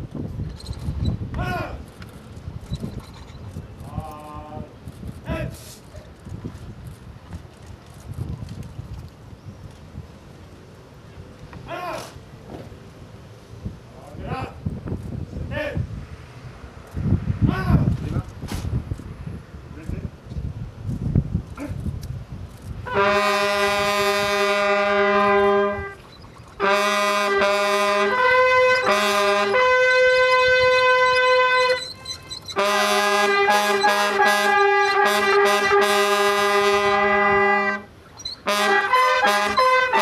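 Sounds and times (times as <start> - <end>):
wind buffeting microphone: 0.0 - 11.7, 12.3 - 40.0
military brass playing: 22.8 - 26.0, 26.6 - 40.0.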